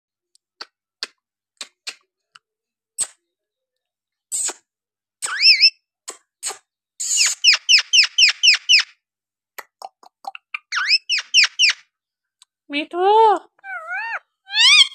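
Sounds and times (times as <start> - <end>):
parakeet chirps: 5.2 - 5.8, 7.0 - 9.0, 10.3 - 11.9, 13.6 - 14.9
parakeet whistle: 5.3 - 5.8, 7.0 - 8.9, 10.7 - 11.8.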